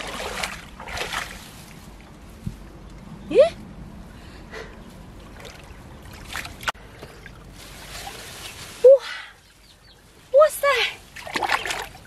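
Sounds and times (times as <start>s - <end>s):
stream water splashing: 0.0s - 2.1s, 5.2s - 8.6s, 11.1s - 12.0s.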